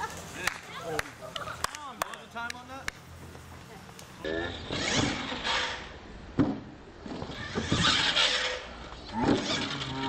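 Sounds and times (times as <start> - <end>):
people laughing: 0.0 - 1.9
toy truck motor whirring: 4.3 - 6.0, 7.1 - 10.0.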